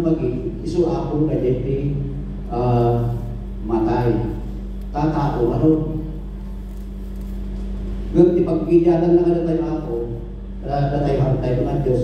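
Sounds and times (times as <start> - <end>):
large room background noise: 0.0 - 12.0
steady low hum: 0.0 - 12.0.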